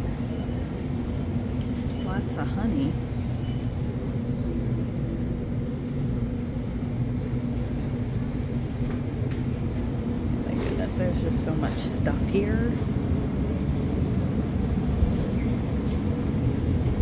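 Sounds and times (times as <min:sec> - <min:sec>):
constant low hum: 0:00.0 - 0:17.0.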